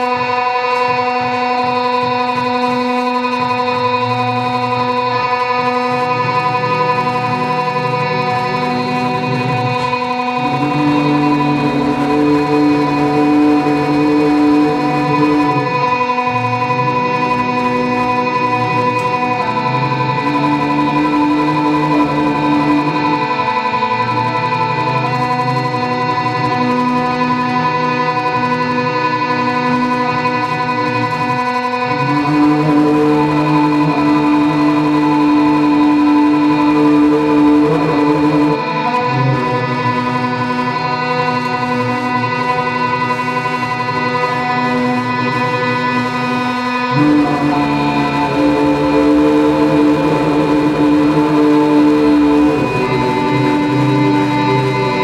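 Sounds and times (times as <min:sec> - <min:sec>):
electronic drone music: 0:00.0 - 0:55.0.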